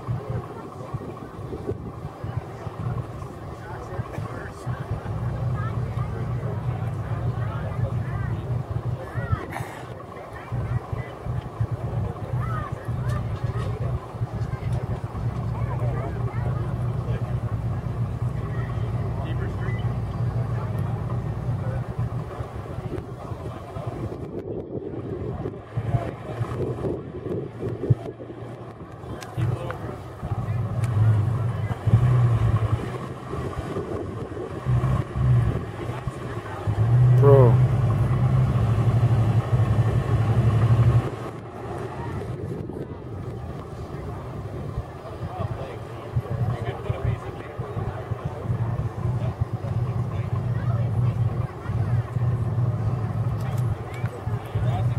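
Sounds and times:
truck engine revving: 0:00.0 - 0:54.9.

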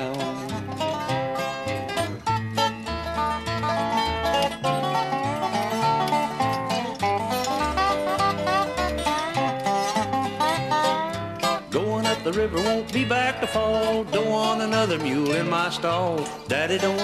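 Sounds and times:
string band playing: 0:00.0 - 0:17.0.

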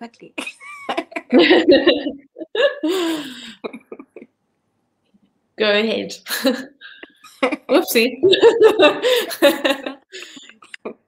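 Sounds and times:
women laughing: 0:00.4 - 0:04.3, 0:07.3 - 0:10.4.

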